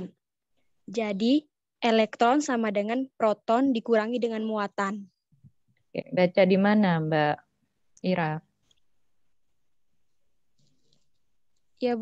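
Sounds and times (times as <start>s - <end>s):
woman speaking: 6.0s - 8.5s.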